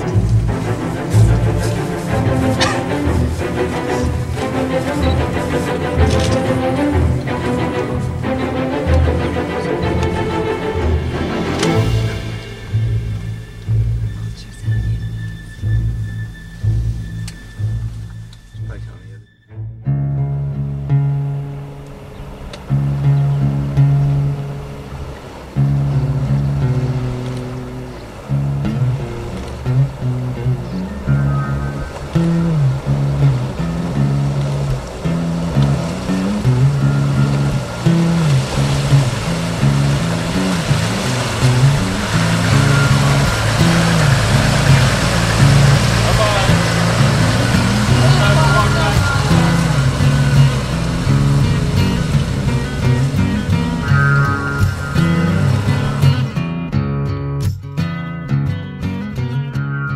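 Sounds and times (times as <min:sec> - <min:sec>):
water splashing: 0:00.0 - 0:18.7, 0:20.3 - 0:56.7
vehicle engine noise: 0:00.0 - 0:19.2, 0:20.0 - 0:56.8
acoustic guitar music: 0:00.0 - 0:59.9.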